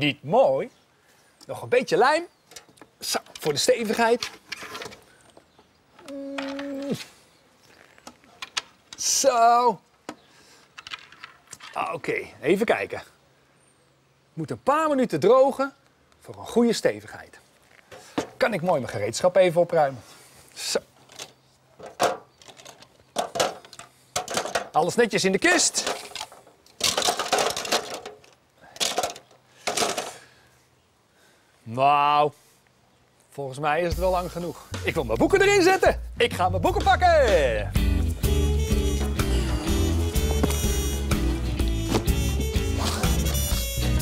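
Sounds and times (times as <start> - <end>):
tools clattering into plastic toolbox: 21.1 - 24.8, 25.7 - 30.2.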